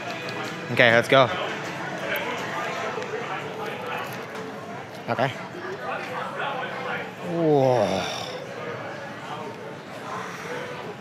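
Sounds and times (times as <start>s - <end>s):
people talking indistinctly: 0.0s - 11.0s
street noise: 0.0s - 11.0s.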